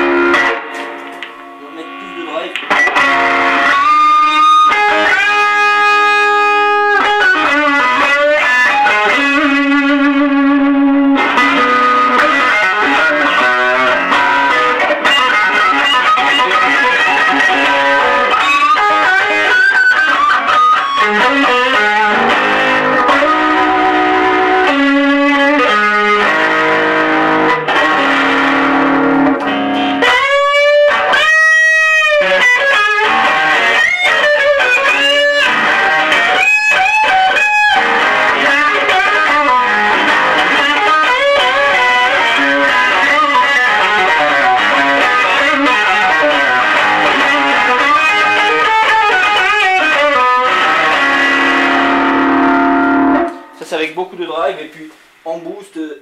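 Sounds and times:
overdriven electric guitar lead: 0.0 - 53.8.

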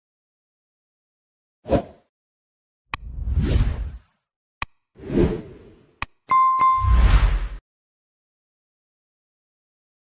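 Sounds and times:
bell dings: 6.3 - 7.0
swoosh: 6.8 - 7.6.

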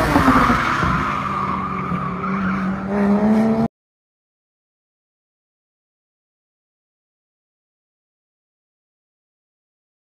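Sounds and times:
sports car engine: 0.0 - 3.7.

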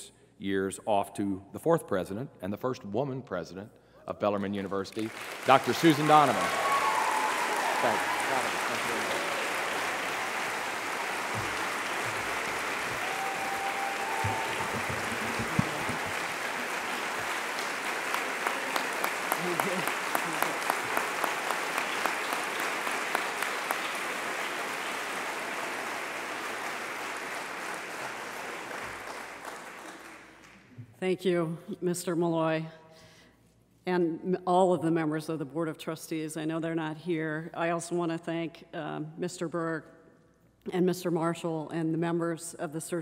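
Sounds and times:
audience applauding: 4.9 - 30.7
single sharp claps: 8.7 - 25.3.

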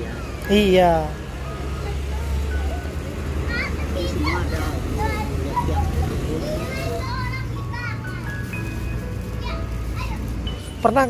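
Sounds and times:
distant voices: 0.0 - 11.0
vehicle engine rumble: 0.0 - 11.0
plastic bags rustling: 4.0 - 11.0.

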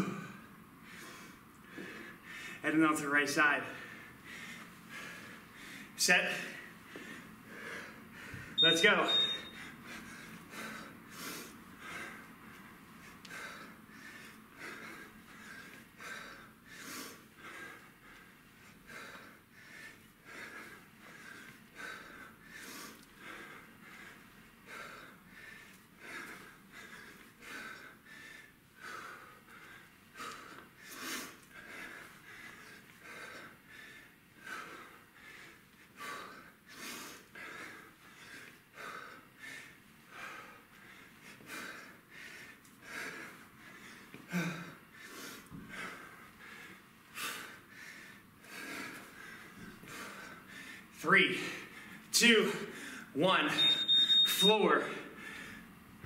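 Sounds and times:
man breathing forcefully: 0.0 - 2.6, 3.6 - 53.4, 55.0 - 55.8.

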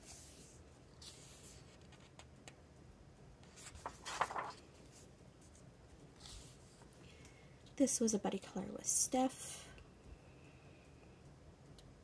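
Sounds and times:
paper page turning: 3.5 - 5.0.

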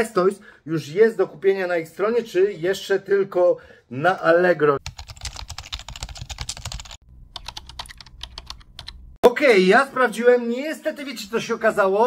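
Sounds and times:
rapid typing on a keyboard: 4.8 - 9.0.

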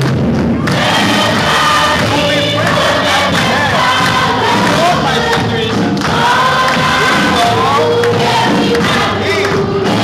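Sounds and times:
people clapping along: 0.0 - 10.0
congregation singing: 0.6 - 10.0.

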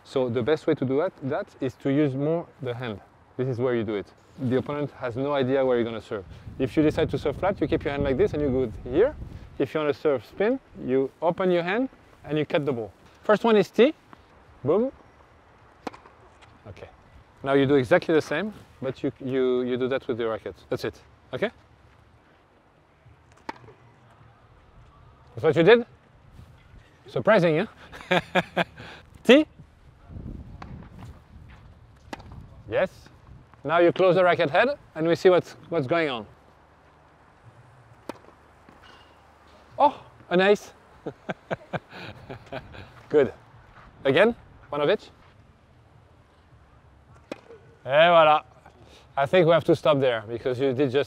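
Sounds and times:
tennis racket hitting ball: 38.0 - 39.2.

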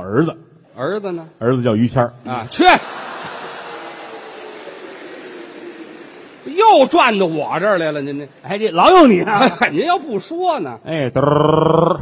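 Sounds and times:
performers speaking: 0.0 - 11.9
audience laughing: 2.5 - 10.1
audience applauding: 2.6 - 9.6.

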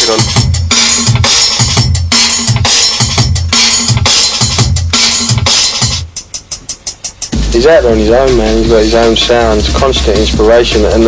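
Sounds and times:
breakbeat drums: 0.0 - 11.0
deep bass line: 7.3 - 11.0.

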